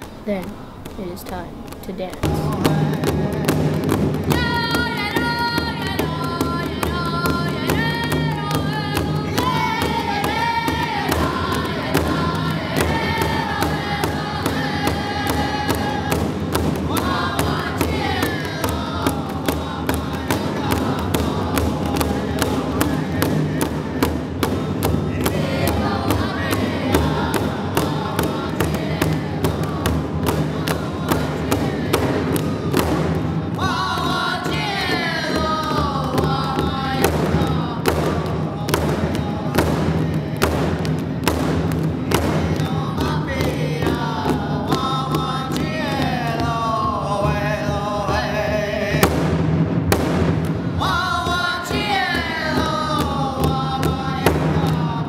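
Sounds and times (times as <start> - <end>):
big drum beating: 0.0 - 55.0
group of singers chanting: 4.3 - 16.3, 16.9 - 40.6, 50.8 - 55.0.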